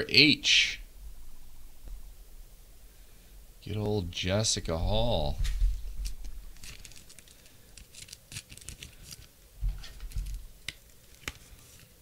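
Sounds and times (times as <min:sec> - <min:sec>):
trading cards handling: 0:05.4 - 0:12.0.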